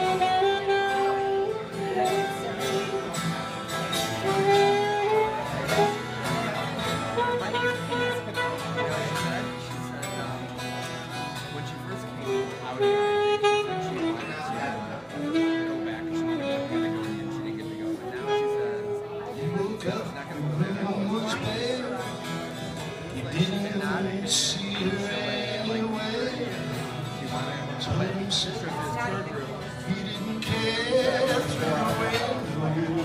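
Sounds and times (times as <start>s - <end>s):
saxophone melody: 0.0s - 9.9s, 12.0s - 19.8s
strummed acoustic guitar: 0.0s - 33.0s.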